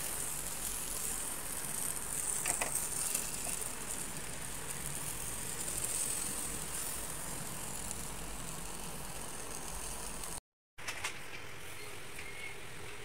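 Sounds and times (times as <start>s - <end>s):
fish sizzling in oven: 0.0s - 10.4s.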